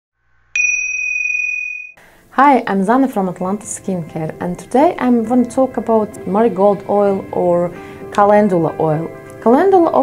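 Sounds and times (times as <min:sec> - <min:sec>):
bright bell-like chime: 0:00.6 - 0:02.0.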